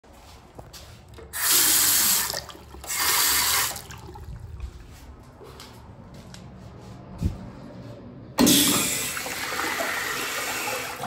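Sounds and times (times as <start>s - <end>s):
faucet running into sink: 8.4s - 11.0s.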